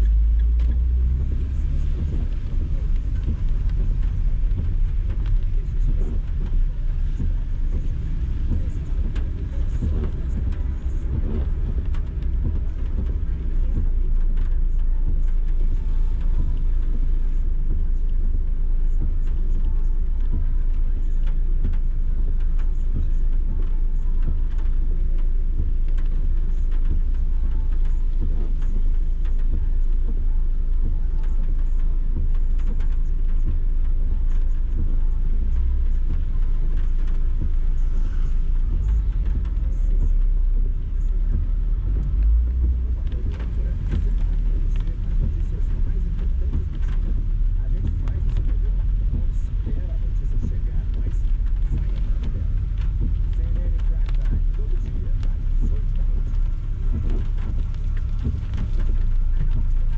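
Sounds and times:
car engine rumble: 0:00.0 - 0:59.9
road noise: 0:00.0 - 0:59.9.

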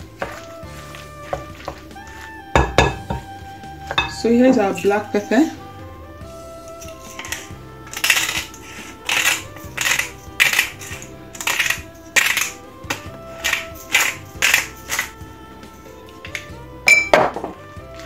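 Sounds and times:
soft background music: 0:00.0 - 0:18.0
glass pepper shaker shaking: 0:06.7 - 0:15.2.

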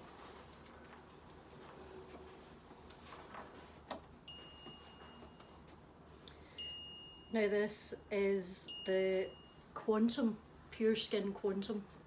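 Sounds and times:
high-pitched electronic tone: 0:06.6 - 0:09.7.

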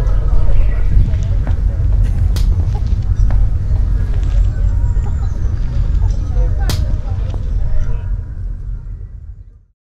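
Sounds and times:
low rumbling background noise: 0:00.0 - 0:09.7.

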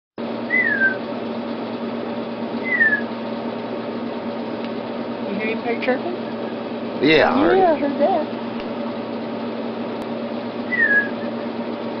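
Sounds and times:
chick chirping inside egg: 0:00.5 - 0:01.0.

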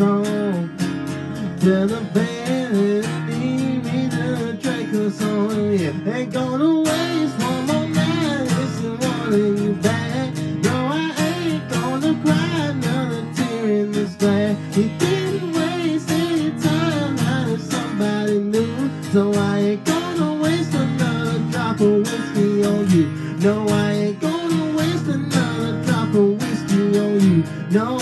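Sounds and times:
acoustic guitar strummed: 0:00.0 - 0:28.0
person singing: 0:00.0 - 0:28.0.

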